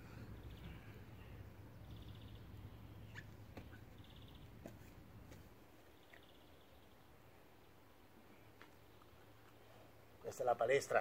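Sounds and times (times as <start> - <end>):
bird chirps: 0.2 - 4.6.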